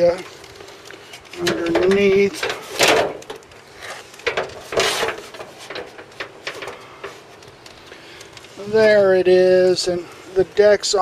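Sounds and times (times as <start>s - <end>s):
scraping rub: 3.7s - 7.3s.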